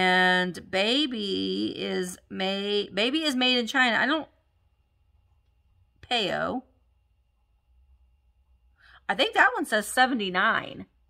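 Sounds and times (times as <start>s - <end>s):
faint low hum: 0.0s - 11.0s
faint breath: 8.7s - 9.1s.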